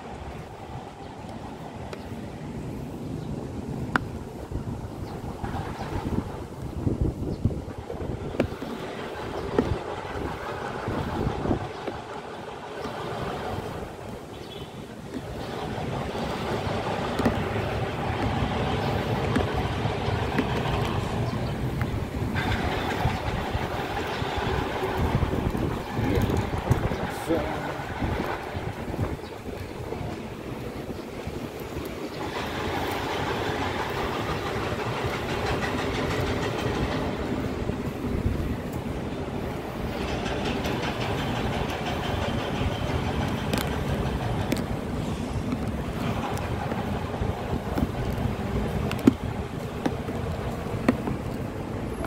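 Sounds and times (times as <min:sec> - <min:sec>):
traffic: 0:00.0 - 0:52.0
wind on microphone: 0:00.0 - 0:52.0.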